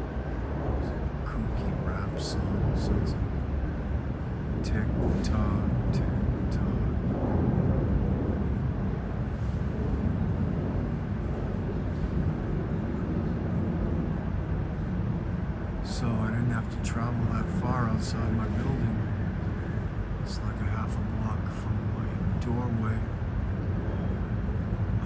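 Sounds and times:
low rumble of traffic: 0:00.0 - 0:25.0
faint voices: 0:00.6 - 0:03.3, 0:04.6 - 0:09.0, 0:15.8 - 0:23.2.

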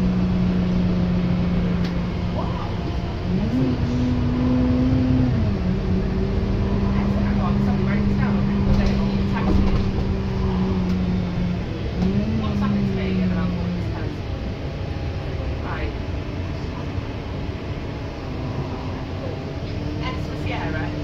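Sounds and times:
bus engine and road rumble: 0:00.0 - 0:21.0
steady drone: 0:00.0 - 0:21.0
faint passenger voices: 0:01.5 - 0:04.1, 0:06.6 - 0:21.0.

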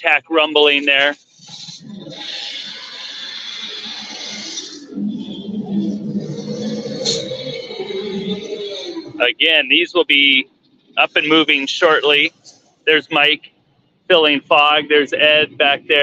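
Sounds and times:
low rumbling growl: 0:01.5 - 0:09.2.

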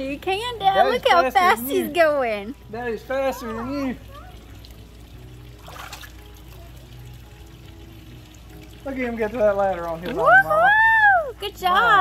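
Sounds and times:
faint background music: 0:00.0 - 0:12.0
lake water splashing and lapping: 0:00.0 - 0:12.0.

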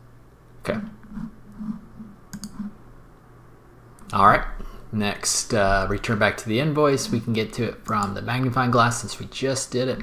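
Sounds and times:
computer mouse button clicking: 0:02.3 - 0:02.7.

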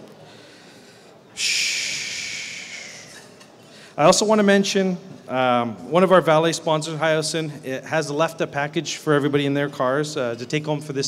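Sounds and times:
breath blown into microphone: 0:00.2 - 0:04.0.

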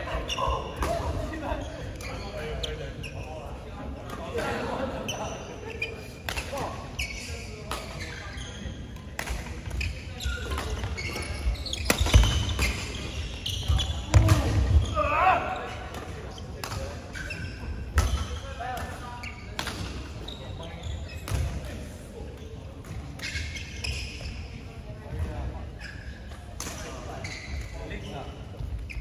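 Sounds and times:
voices echoing in hall: 0:00.0 - 0:29.0.

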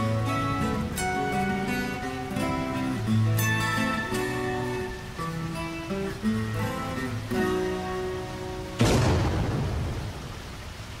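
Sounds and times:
thunderclap rumbling: 0:08.8 - 0:11.0.

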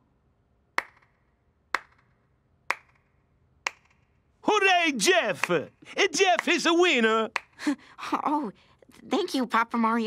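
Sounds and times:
sharp single clicks: 0:02.7 - 0:04.1.

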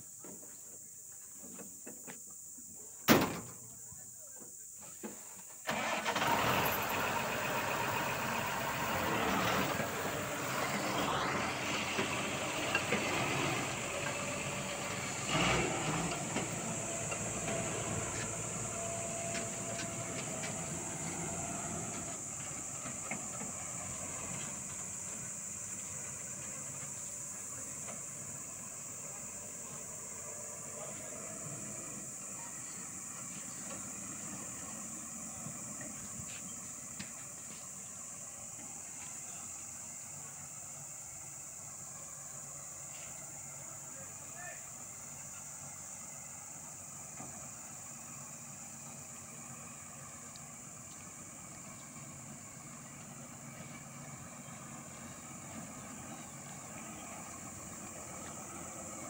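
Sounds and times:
truck diesel engine: 0:05.6 - 0:59.0.

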